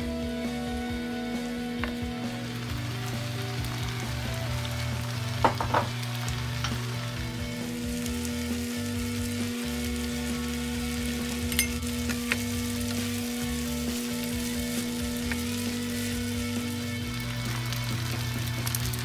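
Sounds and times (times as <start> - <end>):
noodles sizzling in a pan: 0.0 - 19.0.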